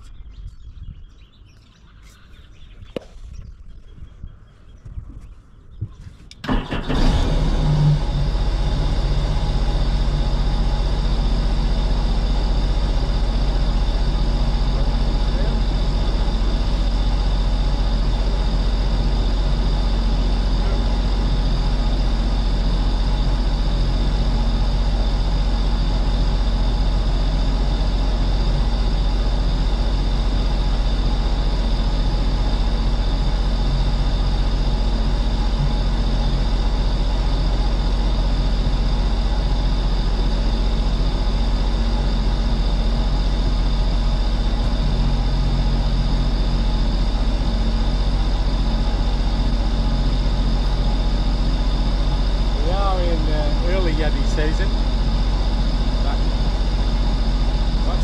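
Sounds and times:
jet boat engine: 6.4s - 58.0s.

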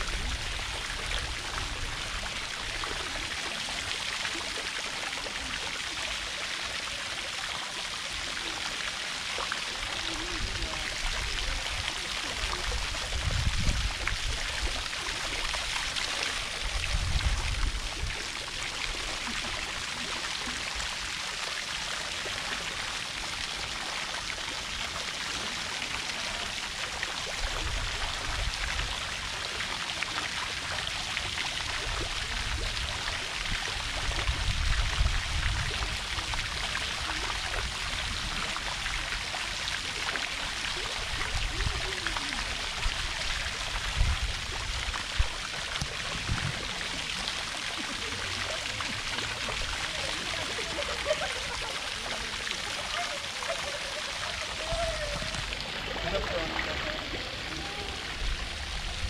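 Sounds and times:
fountain jets splashing into pool: 0.0s - 59.0s.

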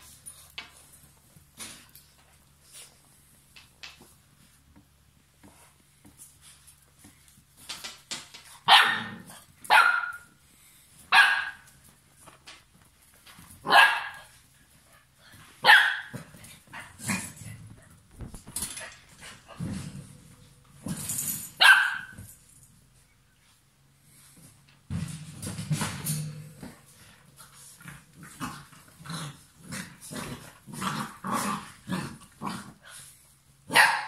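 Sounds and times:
puppies scuffling: 0.0s - 33.6s
puppies barking: 8.7s - 10.3s, 11.1s - 11.6s, 13.6s - 14.3s, 15.6s - 16.2s, 21.6s - 22.2s, 33.7s - 34.0s.

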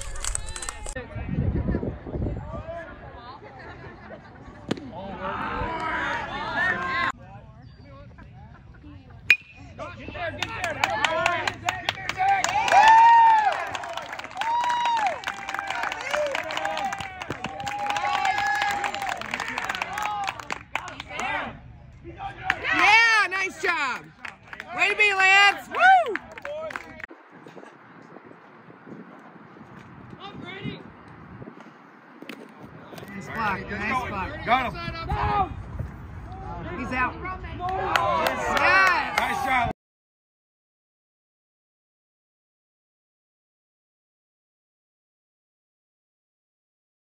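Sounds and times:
faint ballfield background: 2.4s - 12.7s
baseball bat hitting ball: 9.3s - 9.7s
spectators cheering and clapping: 10.3s - 21.5s, 22.4s - 27.1s, 37.6s - 39.7s.

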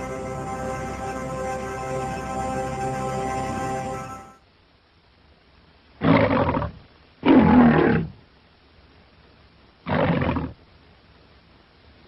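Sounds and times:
faint film hiss: 0.0s - 12.0s
lion roaring: 6.0s - 8.2s, 9.9s - 10.6s.

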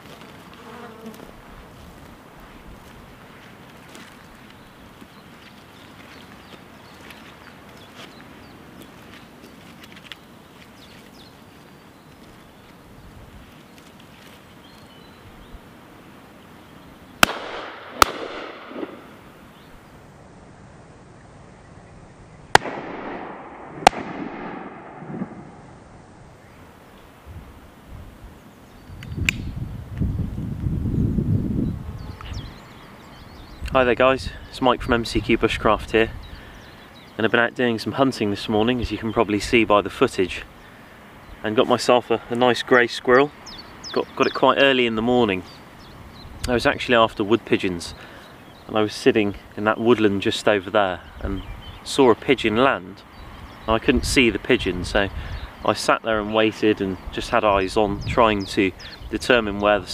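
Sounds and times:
shotgun shots with echo: 17.2s - 19.1s, 22.5s - 25.7s.

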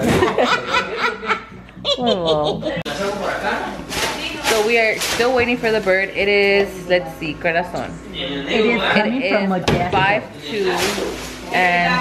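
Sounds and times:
woman laughing: 0.2s - 2.8s.

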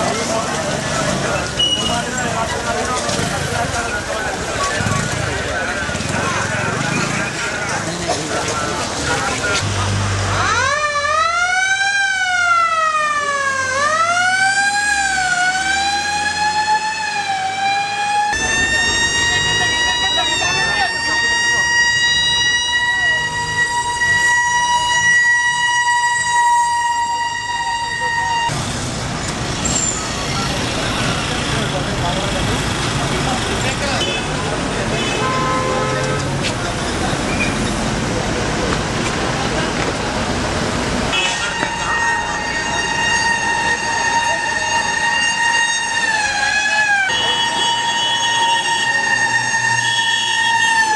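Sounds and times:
crowd voices: 0.0s - 10.4s, 18.3s - 25.1s, 26.9s - 50.9s
ambulance siren wailing: 10.3s - 28.6s, 41.2s - 50.9s.

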